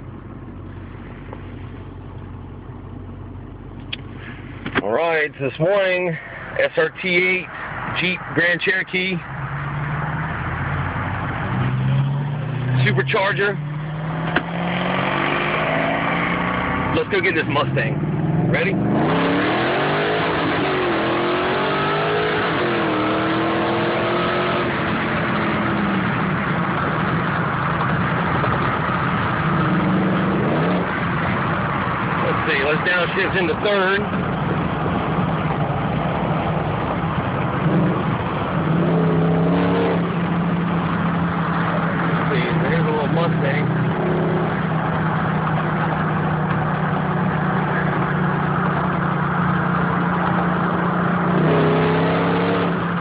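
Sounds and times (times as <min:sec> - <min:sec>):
car engine pulling: 0:00.0 - 0:53.0.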